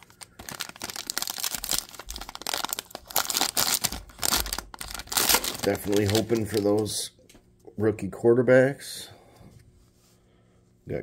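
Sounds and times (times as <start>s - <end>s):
foil wrapper crinkling and tearing: 0.0s - 7.0s.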